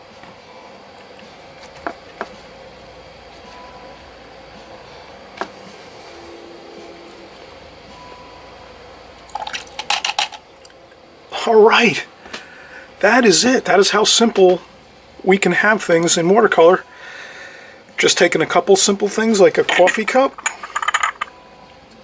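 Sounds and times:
low room hum: 0:00.0 - 0:22.0.

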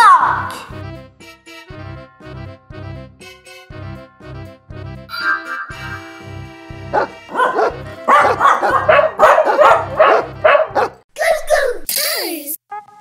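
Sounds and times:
children's music with steady beat: 0:00.5 - 0:08.4
puppy barking: 0:06.9 - 0:11.0.

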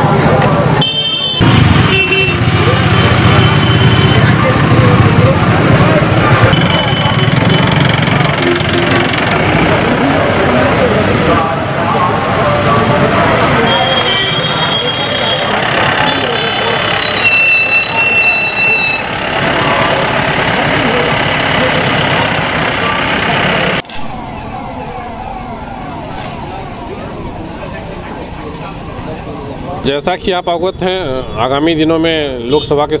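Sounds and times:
many voices talking: 0:00.0 - 0:01.4, 0:02.1 - 0:33.0
vehicle engines: 0:00.0 - 0:33.0.

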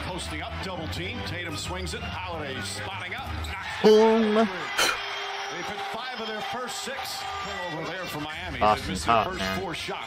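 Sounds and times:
background music: 0:00.0 - 0:05.5, 0:07.2 - 0:10.0
man shouting: 0:03.8 - 0:05.0, 0:08.5 - 0:09.7
people talking: 0:08.1 - 0:09.8.

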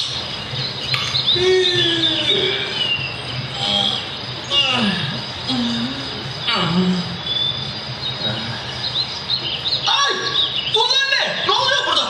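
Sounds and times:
small birds chirping: 0:00.0 - 0:12.0
steady background hum: 0:00.0 - 0:12.0.

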